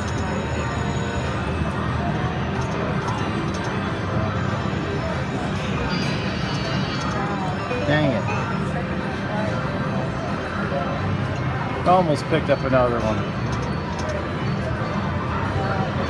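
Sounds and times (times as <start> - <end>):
slot machine reel sounds: 0.0 - 1.5, 2.3 - 8.7.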